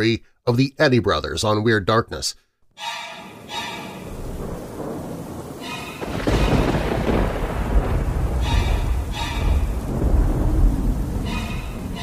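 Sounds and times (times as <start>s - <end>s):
rain hissing: 3.3s - 12.0s
thunder rumbling: 3.4s - 12.0s.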